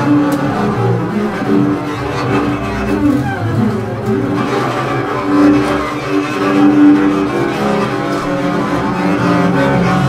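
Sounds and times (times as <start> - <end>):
bowed double basses: 0.0 - 10.0.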